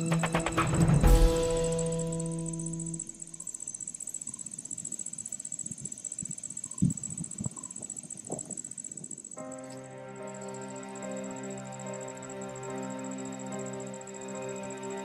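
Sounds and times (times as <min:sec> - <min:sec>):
insects trilling: 0:00.0 - 0:15.0.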